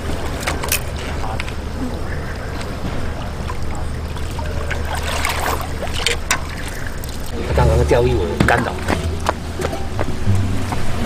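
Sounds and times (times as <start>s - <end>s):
fish splashing in water: 0.0s - 7.6s.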